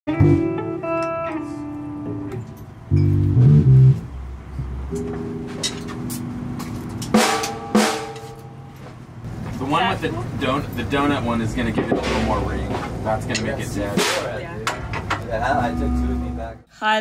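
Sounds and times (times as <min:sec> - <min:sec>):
electric guitar: 0:00.1 - 0:04.1
bass notes: 0:00.1 - 0:09.4, 0:11.5 - 0:14.6, 0:15.3 - 0:16.6
drum kit hits: 0:05.0 - 0:08.9, 0:11.8 - 0:13.0, 0:13.8 - 0:14.8.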